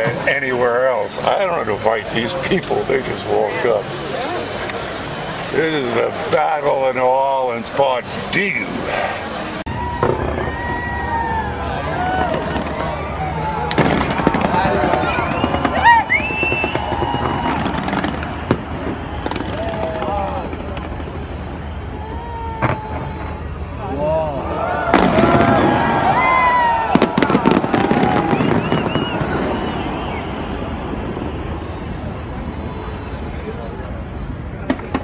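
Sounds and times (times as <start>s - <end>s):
people's voices: 0.0s - 9.7s, 19.2s - 28.5s
fireworks crackling: 0.0s - 35.0s
fireworks whistling: 8.1s - 23.9s, 24.9s - 35.0s
fireworks bangs: 8.1s - 35.0s.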